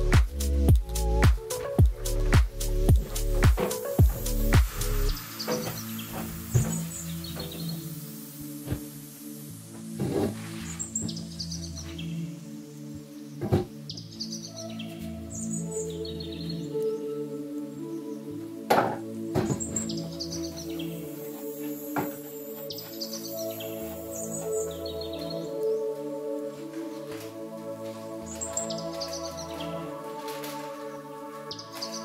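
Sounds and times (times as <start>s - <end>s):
calm background music: 0.0s - 32.0s
bird chirps: 1.0s - 9.3s, 19.5s - 25.9s, 28.3s - 29.9s, 30.8s - 32.0s.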